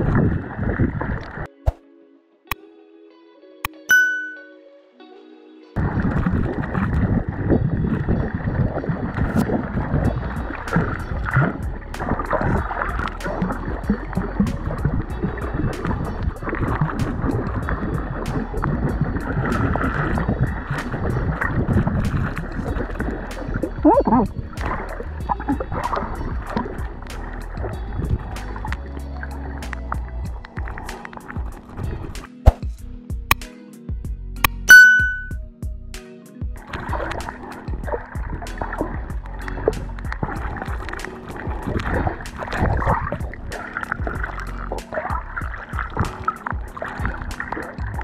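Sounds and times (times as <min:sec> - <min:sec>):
muffled underwater water noise: 0:00.0 - 0:01.5, 0:05.8 - 0:32.6, 0:36.6 - 0:48.0
music with ticking beat: 0:03.6 - 0:04.5, 0:09.4 - 0:48.0.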